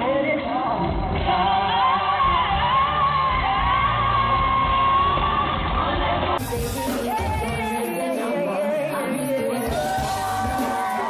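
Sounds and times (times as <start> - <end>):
woman singing live with band: 0.0 - 11.0.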